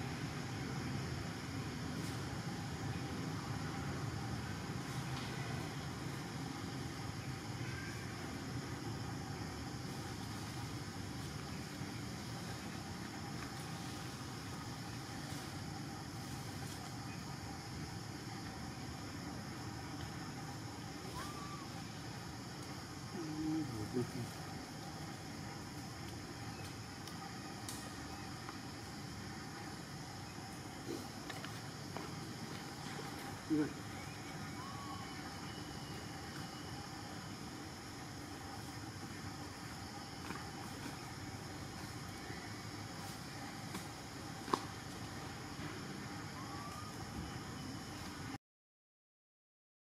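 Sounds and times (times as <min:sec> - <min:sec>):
faint high-pitched hums: 0:00.0 - 0:48.4.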